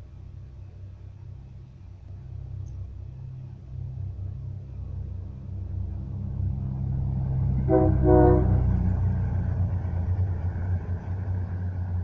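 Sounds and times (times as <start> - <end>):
train rumbling: 0.0 - 12.0.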